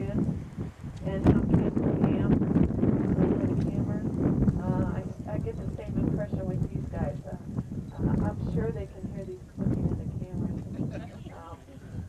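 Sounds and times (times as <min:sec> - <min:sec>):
people talking indistinctly: 0:01.0 - 0:02.4, 0:03.0 - 0:12.0.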